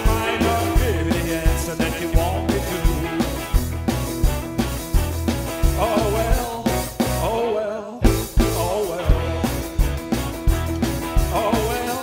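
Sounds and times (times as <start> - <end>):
keyboard: 0.0 - 7.4, 8.0 - 12.0
bass guitar: 0.0 - 12.0
drums: 0.0 - 12.0
electric guitar: 0.0 - 12.0.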